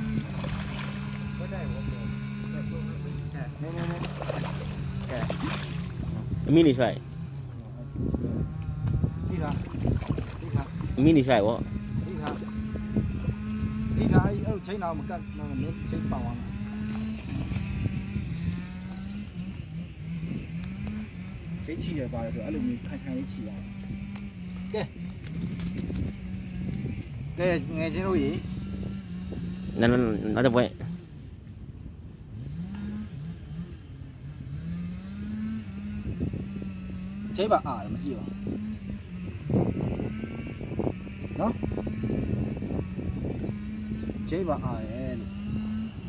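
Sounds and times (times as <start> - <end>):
fish splashing in water: 0.0 - 1.3, 3.7 - 6.3, 9.5 - 10.9
engine revving: 0.0 - 31.3, 32.2 - 46.0
motor drone: 0.0 - 46.0.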